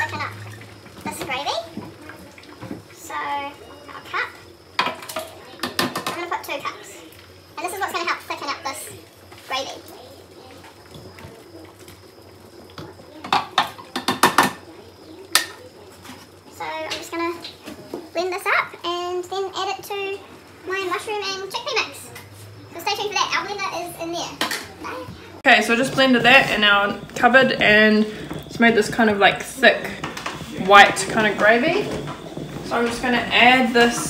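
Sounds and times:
metal ladle knocking on pots: 13.2s - 14.6s
young child talking: 18.2s - 25.4s.

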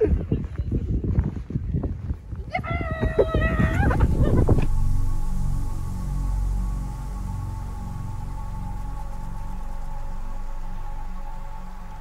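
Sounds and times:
wind rumbling on microphone: 0.0s - 12.0s
footsteps crunching in snow: 0.4s - 7.3s
person singing high wavering note: 3.4s - 12.0s.

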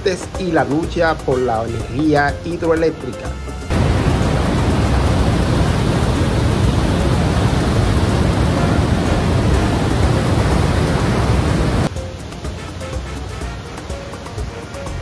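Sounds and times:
river rapids: 0.0s - 15.0s
waterfall rushing: 0.0s - 15.0s.

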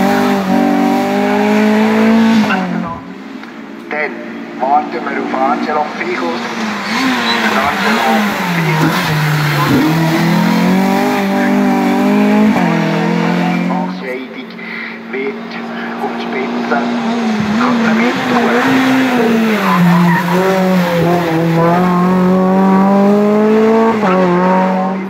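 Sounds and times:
gear change: 0.0s - 25.0s
race car engine revving: 0.0s - 25.0s
second car engine approaching: 0.0s - 25.0s.

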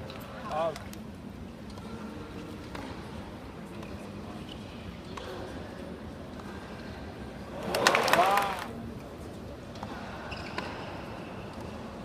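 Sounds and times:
tennis crowd background: 0.0s - 12.0s.

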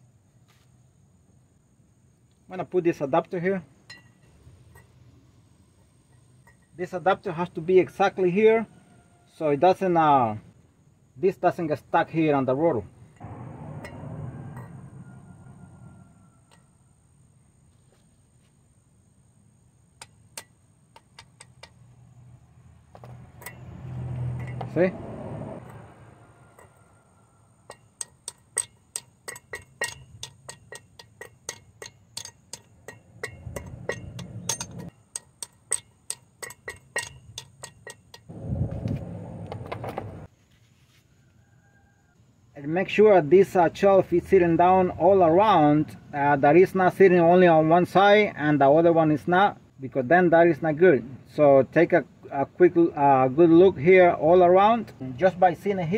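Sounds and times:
hammer tapping on metal: 27.6s - 38.3s.

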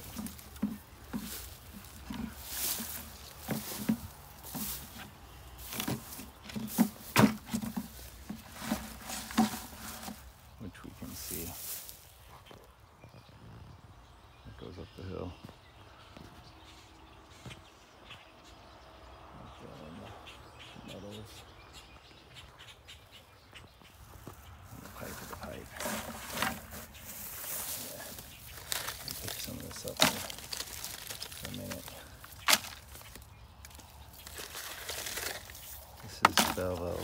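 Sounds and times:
grass and plastic litter rustling: 0.0s - 12.7s, 23.8s - 37.0s.

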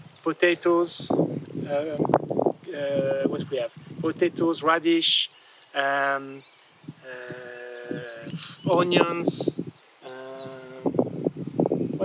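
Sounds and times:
man hesitating and mumbling: 7.0s - 11.2s.

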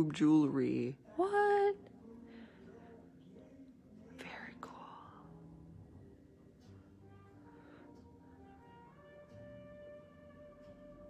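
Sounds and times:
faint instrumental music: 0.0s - 11.0s.

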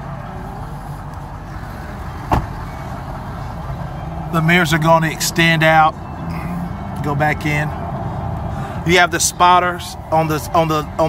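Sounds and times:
truck engine rumbling: 0.0s - 11.0s.

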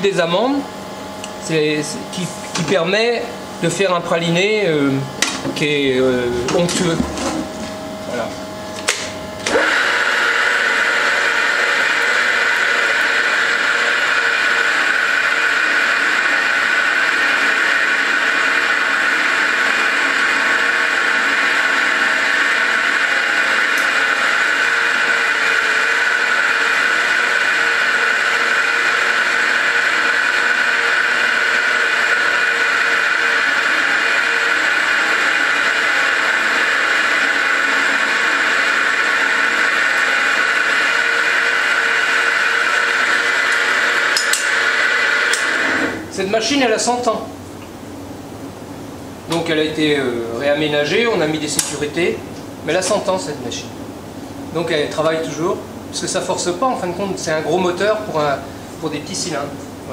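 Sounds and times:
electric roller grinder running: 5.9s - 8.2s, 9.0s - 46.1s.

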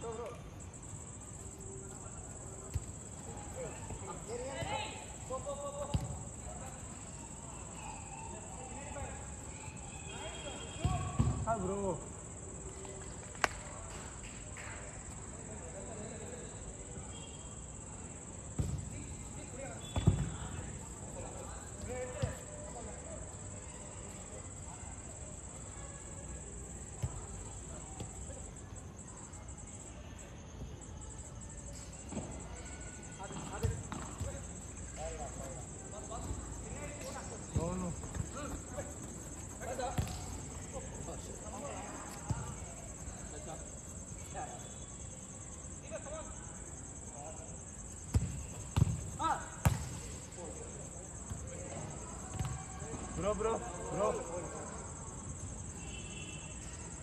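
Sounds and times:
foot kicking football: 5.8s - 6.2s, 19.8s - 20.5s, 37.5s - 40.8s, 48.1s - 50.1s.

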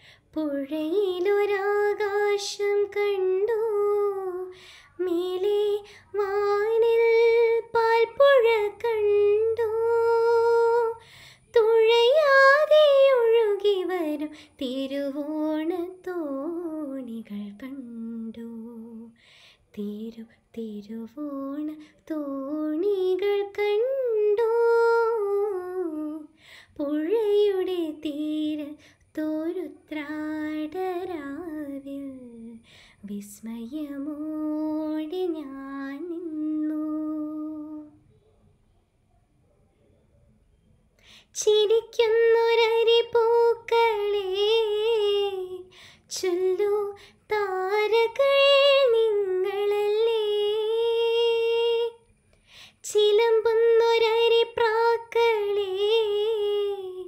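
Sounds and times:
girl singing unaccompanied: 0.0s - 38.1s, 41.2s - 57.0s
intake of breath: 4.5s - 5.0s, 11.0s - 11.5s, 19.2s - 19.7s, 26.3s - 26.8s, 32.6s - 33.0s, 45.7s - 46.1s, 52.3s - 52.8s.

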